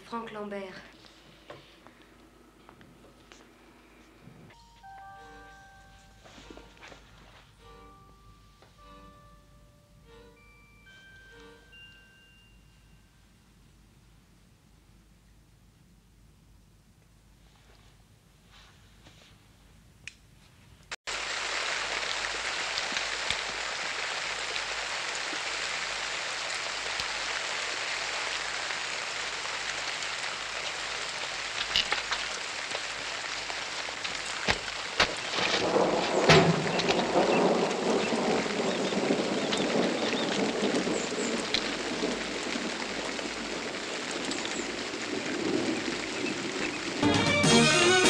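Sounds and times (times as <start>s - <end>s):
steady rain: 21.1s - 48.0s.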